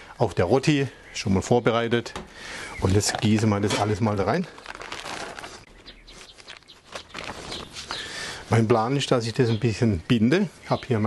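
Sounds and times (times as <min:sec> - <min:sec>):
plastic bag rustling wetly: 0:02.8 - 0:08.0
faint bird chirps: 0:05.6 - 0:08.3.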